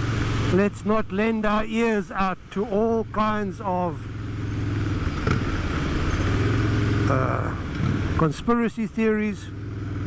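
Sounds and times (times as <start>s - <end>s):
motorcycle engine running: 2.7s - 10.0s.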